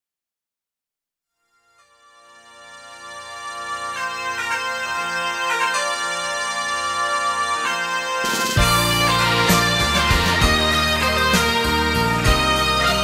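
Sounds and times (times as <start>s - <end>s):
music with held chords: 1.6s - 13.0s
bass and beat: 8.4s - 13.0s.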